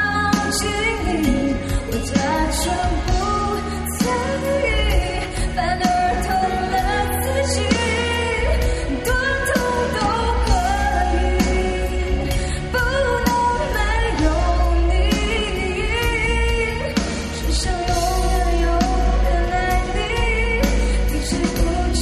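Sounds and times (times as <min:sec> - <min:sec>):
pop band playing: 0:00.0 - 0:22.0
woman singing into microphone: 0:00.0 - 0:22.0.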